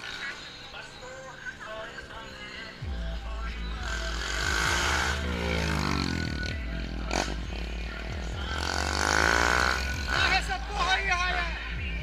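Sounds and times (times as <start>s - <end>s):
background music: 0.0s - 12.0s
motorcycle engine revving past: 3.8s - 10.5s.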